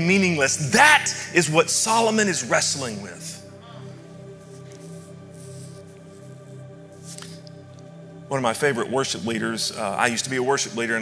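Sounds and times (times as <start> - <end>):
ambient keyboard pad: 0.0 - 11.0.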